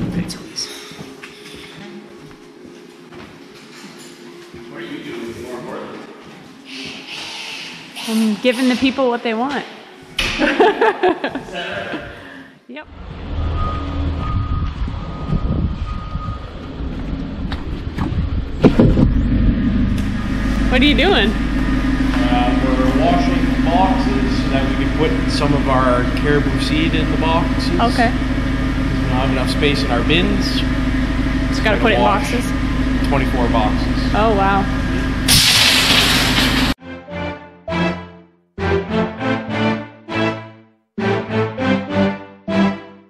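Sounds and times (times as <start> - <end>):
vehicle engine rumbling: 12.8 - 36.8
pressure washer hissing: 35.2 - 36.8
background music: 36.8 - 43.0.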